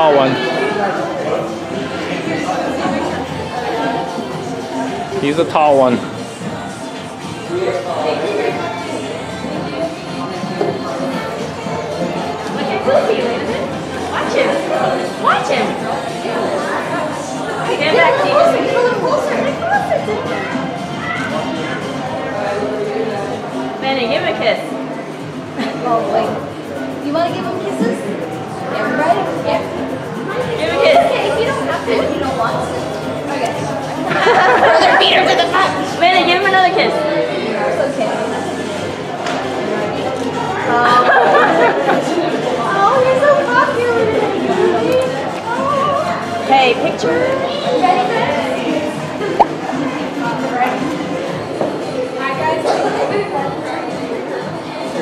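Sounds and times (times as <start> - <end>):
background music: 0.0 - 55.0
voices chattering in a hall: 0.0 - 55.0.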